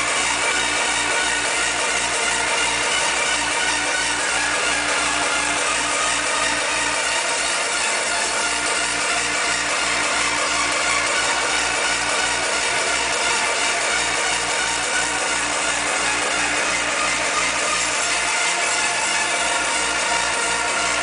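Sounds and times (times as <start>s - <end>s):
fast distorted kick drum: 0.0s - 21.0s
hardcore dance music: 0.0s - 21.0s.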